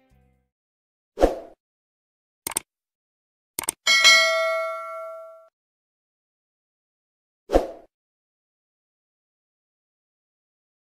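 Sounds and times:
sharp clicks: 2.5 - 2.7, 3.6 - 3.8
notification bell ding: 3.9 - 5.5.

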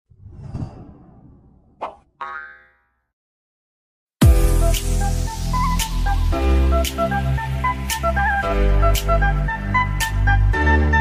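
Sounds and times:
whoosh: 0.1 - 2.1.

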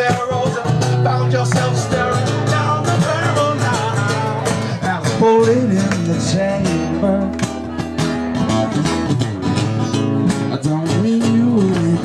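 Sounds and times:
man singing: 0.0 - 7.9, 10.2 - 12.0
acoustic guitar strumming: 0.0 - 12.0.

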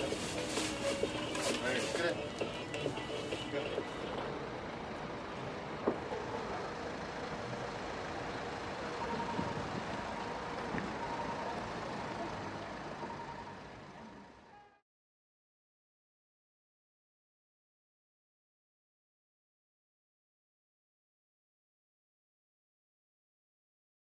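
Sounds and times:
traffic rumble: 0.0 - 14.8
beeping tone: 9.0 - 14.4.

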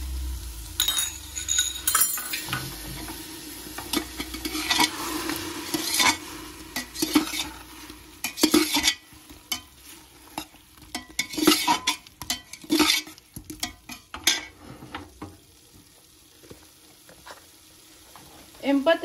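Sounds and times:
oil sizzling: 0.0 - 19.0
spoon scraping metal pot: 3.8 - 14.6.

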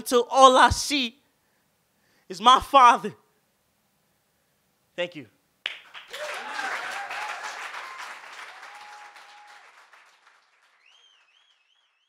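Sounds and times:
audience applauding: 5.7 - 12.0
people cheering: 6.0 - 11.8.

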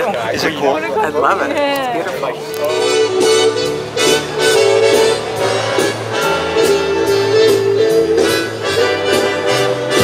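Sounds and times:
reedy melody with walking bass: 0.0 - 10.0.

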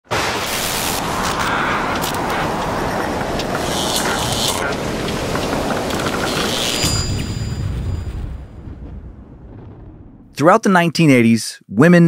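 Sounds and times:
rushing rumble: 0.0 - 10.4
sharp crackles: 0.1 - 10.3.

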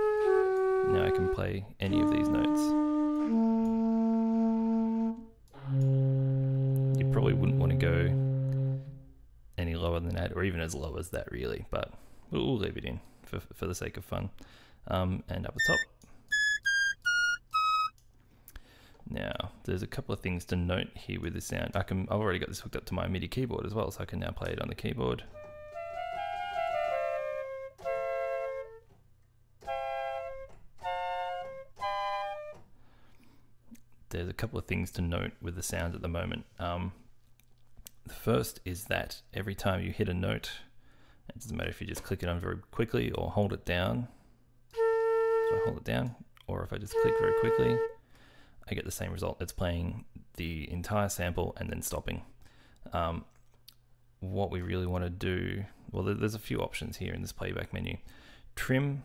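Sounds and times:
flute notes: 0.0 - 9.1, 15.6 - 17.9, 25.3 - 29.0, 29.6 - 32.7, 44.7 - 45.8, 46.9 - 48.0.

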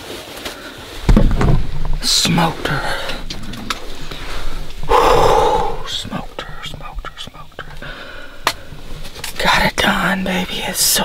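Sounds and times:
man whispering: 2.1 - 3.7, 4.8 - 7.9
heavy breathing: 2.7 - 9.3.

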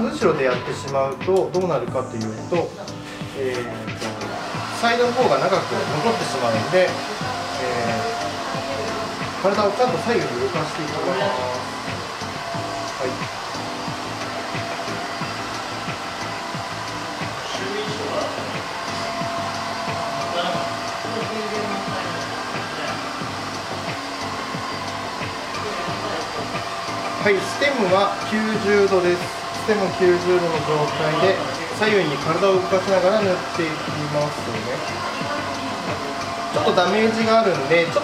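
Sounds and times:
background music: 0.0 - 38.0
hair dryer whirring: 0.0 - 38.0.

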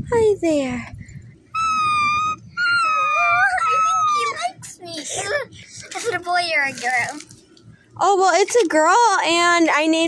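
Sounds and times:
lower wavering whine: 0.0 - 6.4
person whimpering like a puppy: 1.6 - 4.4.

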